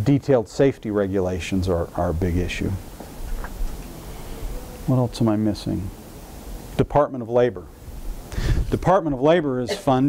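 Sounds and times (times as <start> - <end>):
man speaking: 0.0 - 2.8, 4.8 - 5.9, 8.7 - 10.0
room hum and hiss: 0.0 - 10.0.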